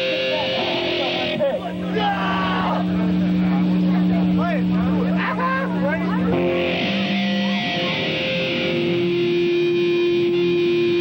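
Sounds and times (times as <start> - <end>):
shouted voices: 0.0 - 8.8
distorted guitar droning: 0.0 - 11.0
guitar squeals: 0.0 - 11.0.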